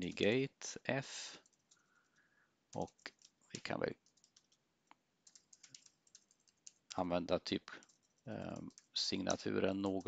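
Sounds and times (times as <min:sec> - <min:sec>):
computer keyboard typing: 0:01.4 - 0:04.6, 0:05.2 - 0:10.0.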